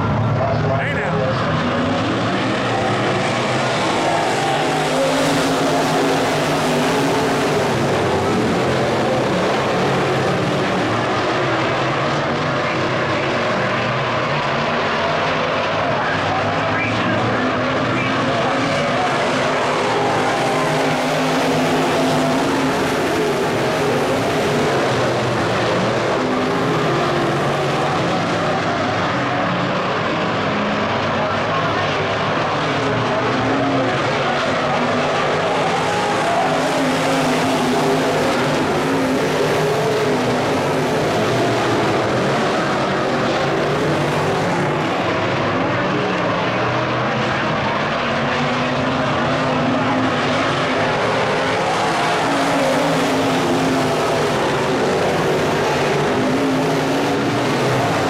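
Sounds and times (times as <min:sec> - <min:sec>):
race car engines droning: 0:00.0 - 0:58.0.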